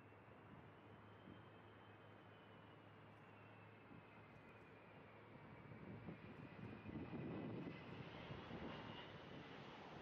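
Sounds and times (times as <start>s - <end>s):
faint jet engine noise: 0.0s - 10.0s.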